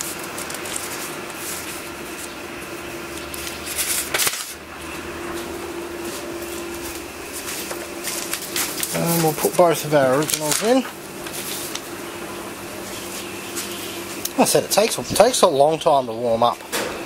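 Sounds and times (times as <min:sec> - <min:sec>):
photocopier humming: 0:00.0 - 0:17.0.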